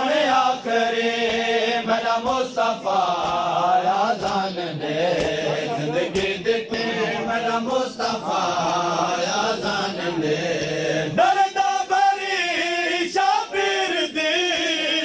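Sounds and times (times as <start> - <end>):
lead voice chanting: 0.0 - 15.0
men chanting in unison: 0.0 - 15.0.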